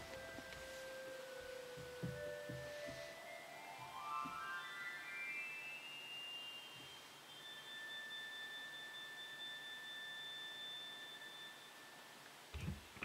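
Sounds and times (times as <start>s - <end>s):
pipe organ sustained high tones: 0.0s - 12.3s.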